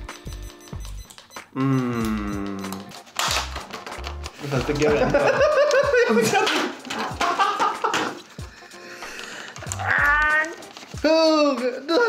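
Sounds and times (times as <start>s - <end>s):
background music: 0.0s - 12.0s
men laughing: 4.6s - 8.6s, 11.6s - 12.0s.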